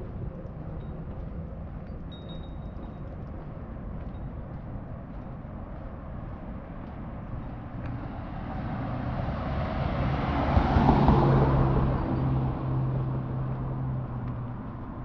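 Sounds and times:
steady engine hum: 0.0 - 15.0
vehicle driving past: 8.0 - 15.0.

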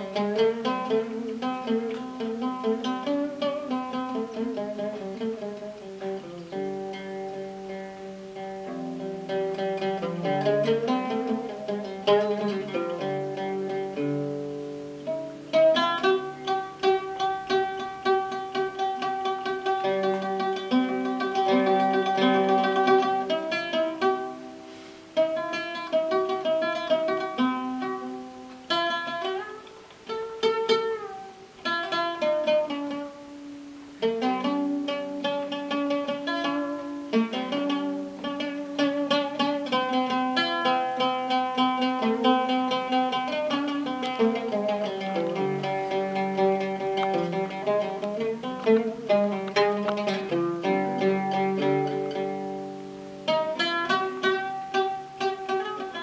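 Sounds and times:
oud plucked melody: 0.0 - 56.0.

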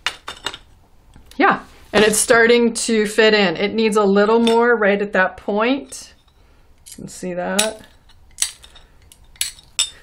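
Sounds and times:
glass nippers snapping: 7.6 - 9.9
glass clinking: 7.6 - 10.0.

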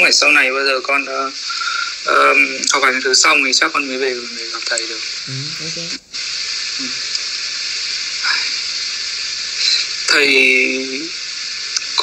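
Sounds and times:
background hiss: 0.0 - 12.0
faint short vocal sound: 5.3 - 6.0.

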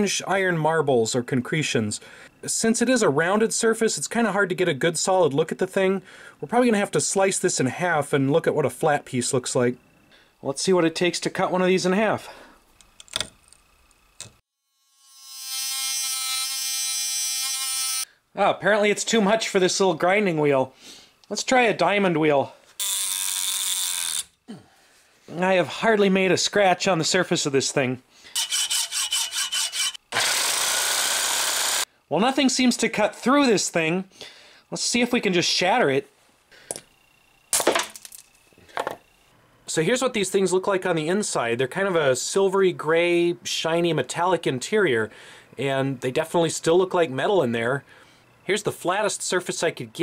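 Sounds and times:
rotary tool whining: 12.7 - 18.1, 22.8 - 24.4, 28.3 - 31.9.

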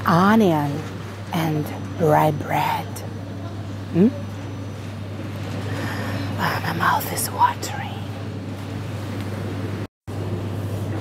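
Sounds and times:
low hum of refrigeration: 0.0 - 11.0
woman saying hmm: 4.0 - 4.2.

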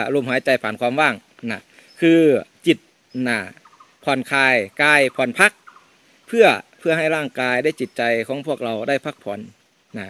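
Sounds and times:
man speaking: 0.0 - 5.6, 6.3 - 10.0.

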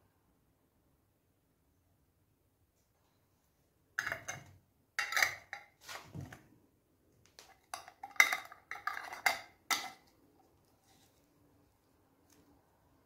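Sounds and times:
metal lids scraping on glass jars: 4.0 - 5.8, 7.6 - 10.1.

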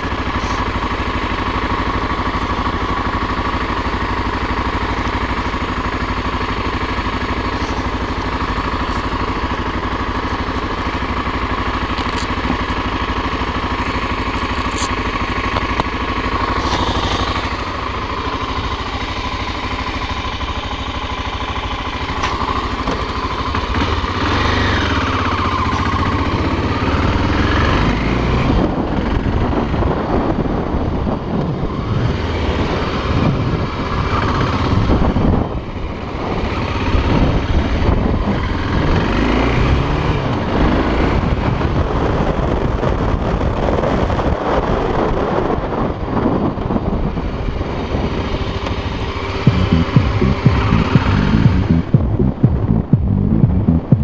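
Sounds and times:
motorcycle engine: 0.0 - 54.0.

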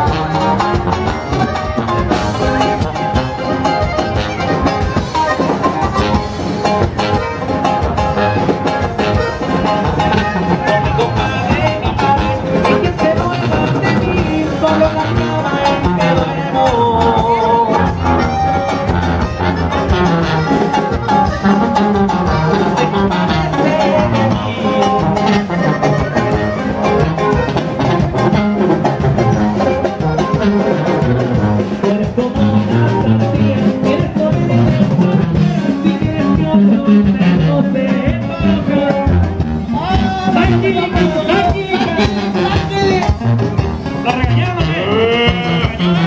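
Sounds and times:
drum kit beat: 0.0 - 46.0
live band music: 0.0 - 46.0
sousaphone bass line: 0.0 - 46.0.

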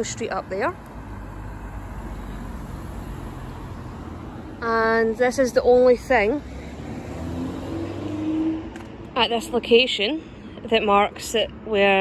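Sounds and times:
car engine accelerating: 6.1 - 8.9.

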